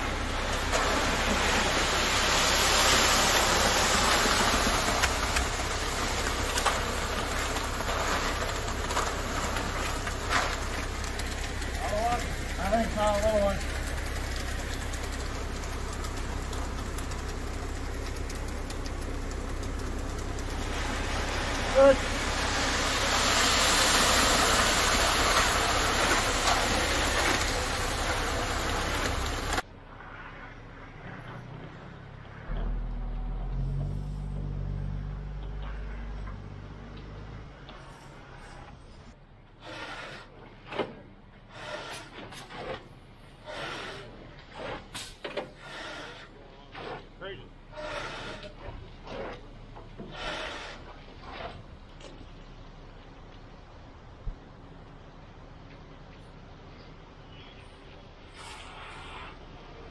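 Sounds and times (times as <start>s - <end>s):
wet concrete pouring: 0.0s - 31.5s, 39.6s - 53.8s, 58.3s - 59.9s
truck engine hum: 0.0s - 59.9s.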